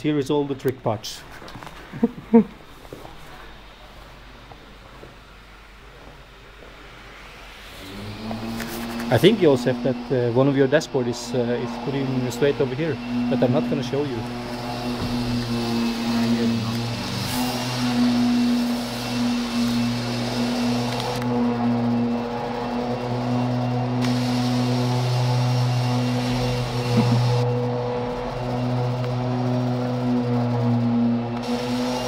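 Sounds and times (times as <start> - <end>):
low machine hum: 3.3 - 32.0.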